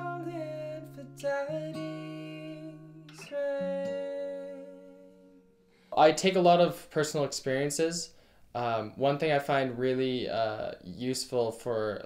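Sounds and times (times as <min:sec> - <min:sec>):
acoustic guitar chord ringing: 0:00.0 - 0:06.8.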